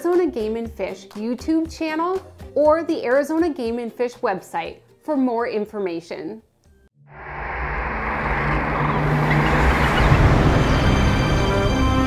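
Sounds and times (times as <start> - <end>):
low held tone: 7.1 - 12.0
outro music sting: 7.1 - 12.0
rising whoosh: 7.1 - 12.0.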